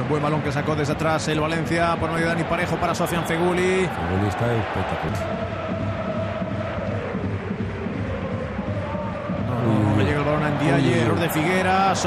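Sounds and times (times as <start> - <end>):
large crowd din: 0.0 - 12.0
fans chanting: 2.5 - 12.0.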